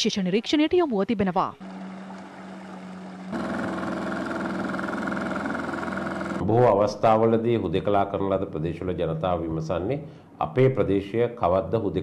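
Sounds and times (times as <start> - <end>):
outboard motor running: 1.6 - 6.4.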